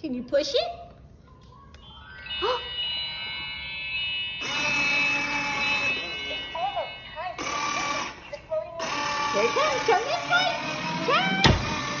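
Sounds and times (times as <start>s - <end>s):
electronic tune from toy speaker: 1.8s - 10.4s.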